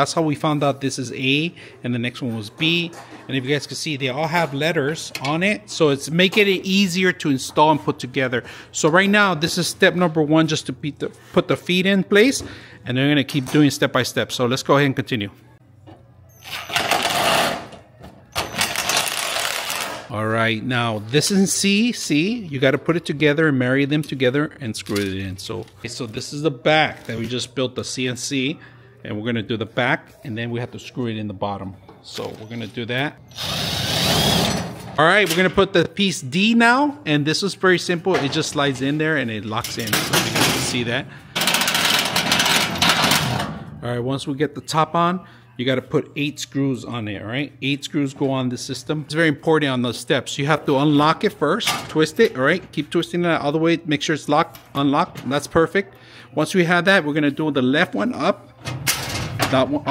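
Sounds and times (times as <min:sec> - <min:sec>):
metal panel rattling and scraping: 0:41.4 - 0:43.6.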